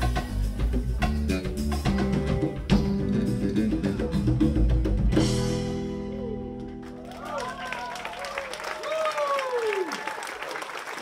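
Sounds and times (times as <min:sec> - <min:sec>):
live band playing fast groove: 0:00.0 - 0:08.1.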